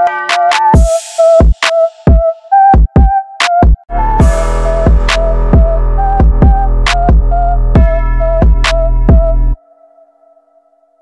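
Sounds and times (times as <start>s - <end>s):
electronic music with heavy beat: 0.0s - 9.6s.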